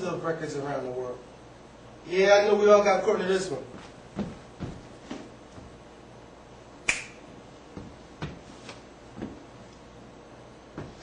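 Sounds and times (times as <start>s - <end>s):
finger snap: 6.8s - 7.2s.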